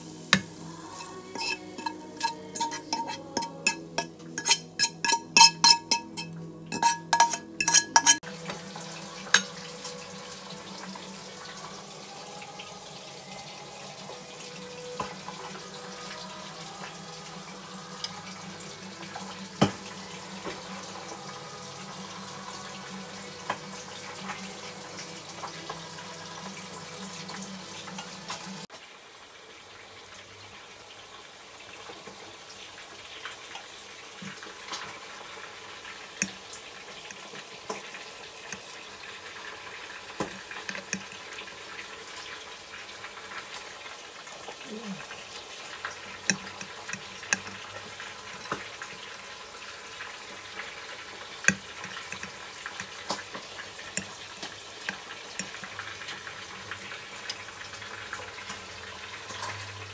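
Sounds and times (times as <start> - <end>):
hissing kitchen background: 0.0 - 59.9
cookware clinking: 0.4 - 8.2, 9.3 - 9.6.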